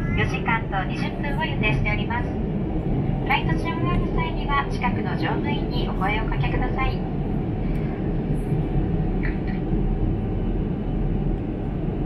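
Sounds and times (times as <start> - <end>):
airliner cabin engine rumble: 0.0 - 12.0.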